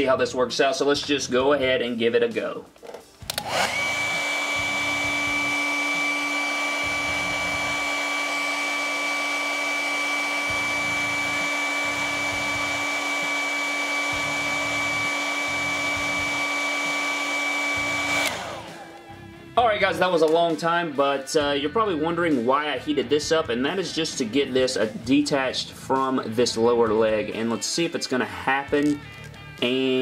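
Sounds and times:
hair dryer running: 0:03.2 - 0:19.4.

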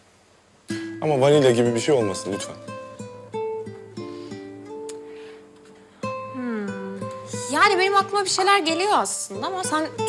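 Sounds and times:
plucked guitar melody: 0:00.7 - 0:10.0.

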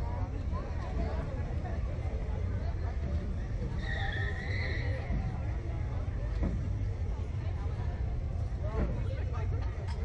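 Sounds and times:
faint voices: 0:00.0 - 0:10.0
low outdoor rumble: 0:00.0 - 0:10.0.

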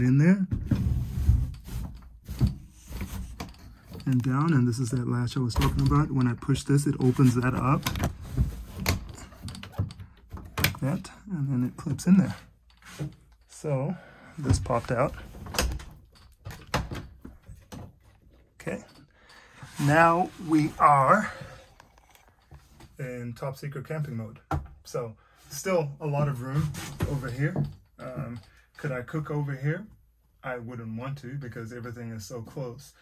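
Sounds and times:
metal latch knocks and clicks: 0:02.3 - 0:11.0.

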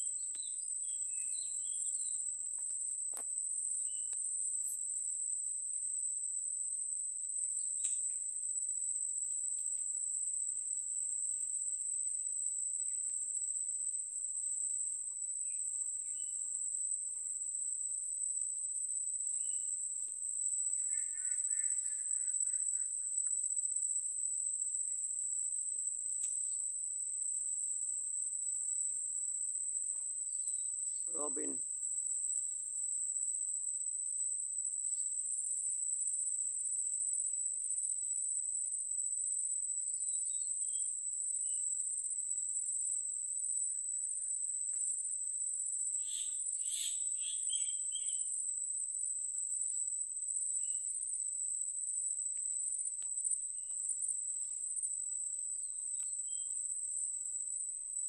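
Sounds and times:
bird chirps: 0:00.0 - 0:02.2, 0:46.0 - 0:48.3
insects droning: 0:00.0 - 0:58.0.

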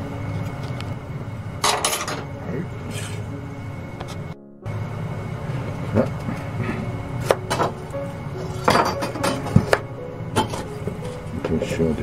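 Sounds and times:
steady low hum: 0:00.0 - 0:12.0
metal kitchenware clinking: 0:01.6 - 0:02.3, 0:08.4 - 0:09.8.

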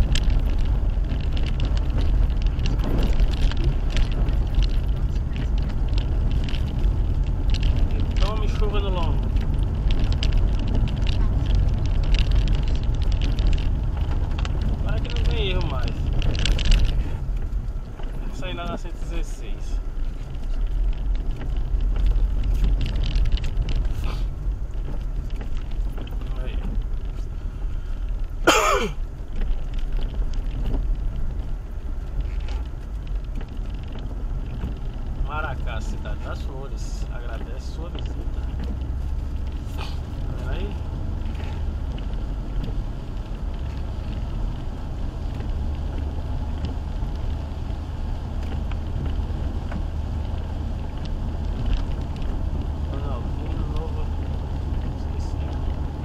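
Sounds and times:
engine and road rumble: 0:00.0 - 0:56.0
rain and spray on vehicle: 0:00.0 - 0:56.0.

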